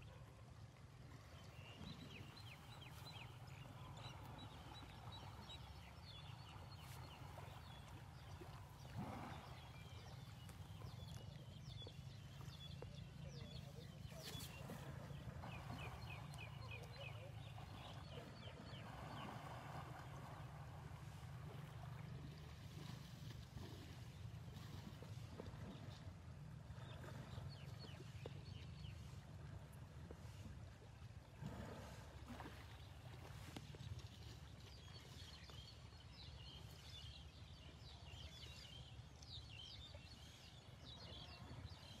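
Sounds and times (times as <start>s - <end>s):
water sloshing and lapping: 0.0s - 42.0s
birds chirping: 1.4s - 20.1s.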